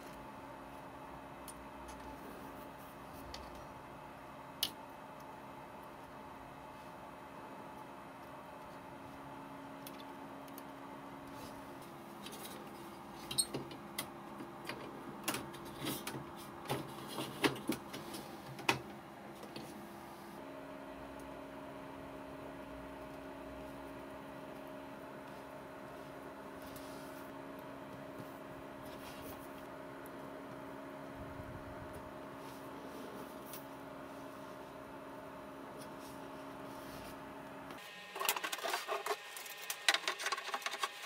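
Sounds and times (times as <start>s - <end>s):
low electrical hum: 0.0s - 41.0s.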